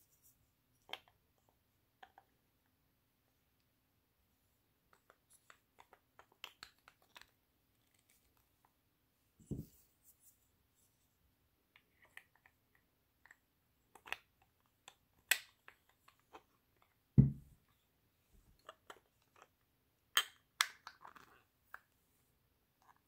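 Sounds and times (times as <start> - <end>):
soft low thump: 17.2 - 17.5.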